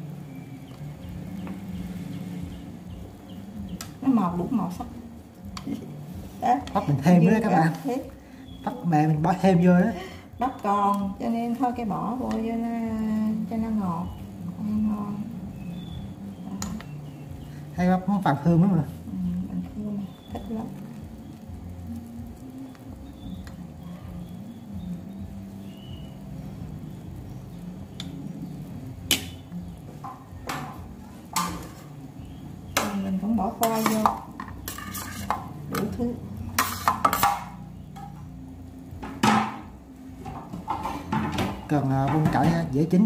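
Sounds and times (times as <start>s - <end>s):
low background noise: 0.0s - 43.0s
utensils knocking on metal pot: 16.5s - 17.0s, 29.0s - 32.0s, 32.7s - 38.2s, 39.0s - 42.8s.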